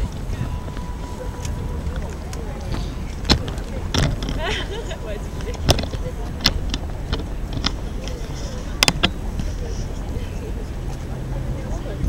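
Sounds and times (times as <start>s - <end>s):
faint distant voices: 0.0s - 12.0s
steady low rumble: 0.0s - 12.0s.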